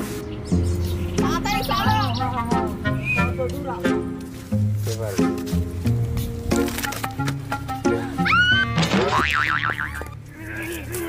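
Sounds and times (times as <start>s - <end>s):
comedy background music: 0.0s - 11.0s.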